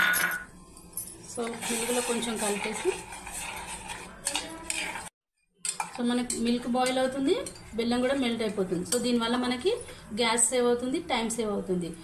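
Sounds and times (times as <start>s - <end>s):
spoon stirring and scraping pot: 1.1s - 10.0s.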